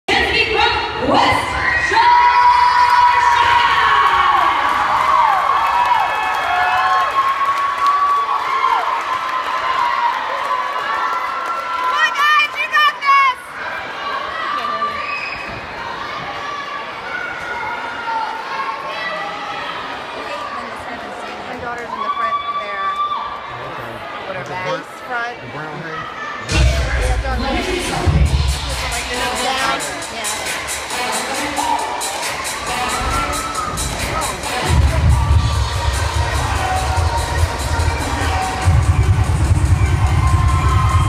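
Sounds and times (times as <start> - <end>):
crowd cheering and screaming: 1.2 - 20.3, 27.8 - 41.0.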